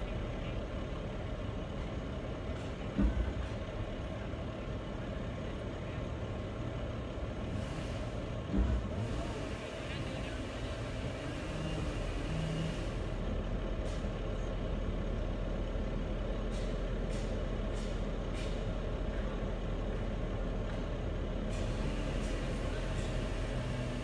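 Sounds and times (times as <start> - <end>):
engine idling: 0.0 - 24.0.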